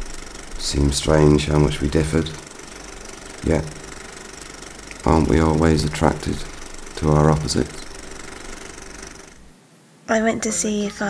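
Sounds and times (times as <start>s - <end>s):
steady low hum: 0.0s - 10.1s.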